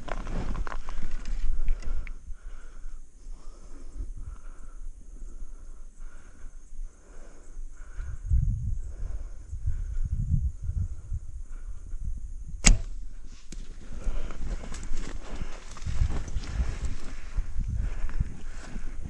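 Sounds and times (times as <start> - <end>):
bowstring snap: 12.6 - 13.6.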